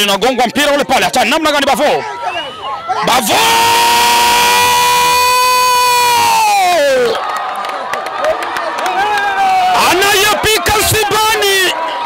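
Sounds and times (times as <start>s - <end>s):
man's long drawn-out shout: 2.9s - 7.2s.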